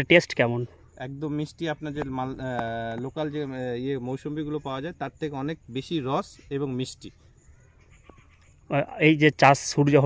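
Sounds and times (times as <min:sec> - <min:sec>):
man speaking: 0:00.0 - 0:07.2, 0:08.7 - 0:10.0.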